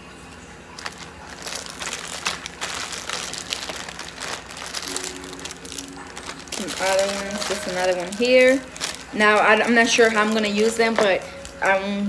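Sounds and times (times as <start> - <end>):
plastic packaging crinkling: 0.7 - 12.0.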